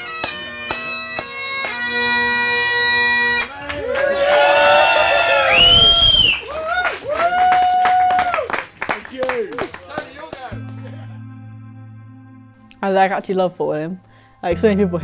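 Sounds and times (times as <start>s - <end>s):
hand claps: 0.0s - 2.2s, 6.2s - 11.0s
people whooping and cheering: 3.4s - 8.7s
soft music: 10.0s - 15.0s.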